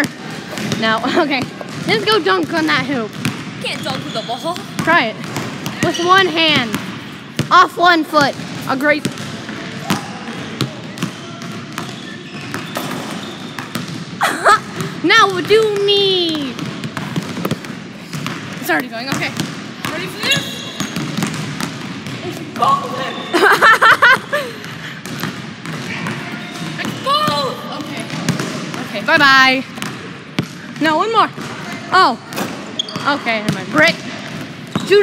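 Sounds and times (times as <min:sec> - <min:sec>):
basketballs bouncing on hardwood floor: 0:00.0 - 0:35.0.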